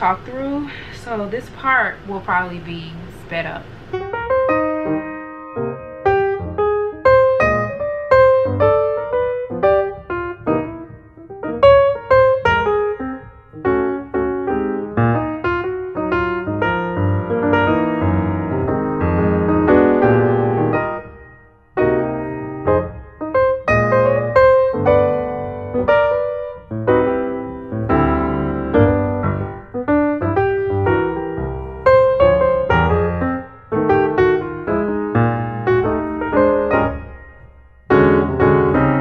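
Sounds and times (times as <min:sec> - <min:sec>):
piano music: 0:00.0 - 0:39.0.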